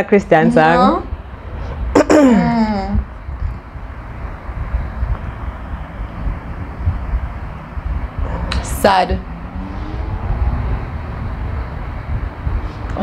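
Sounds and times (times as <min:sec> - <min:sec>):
low background rumble: 0:00.0 - 0:13.0
woman humming hmm: 0:02.2 - 0:03.0.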